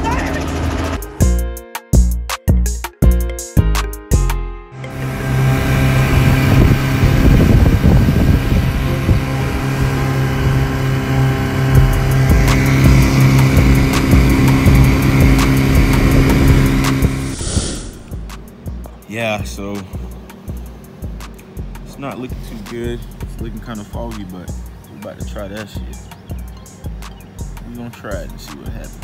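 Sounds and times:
background music: 0:00.0 - 0:29.0
engine humming: 0:00.0 - 0:29.0.

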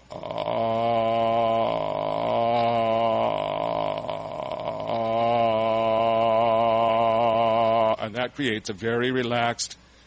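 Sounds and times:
man singing low tone: 0:00.0 - 0:08.2.

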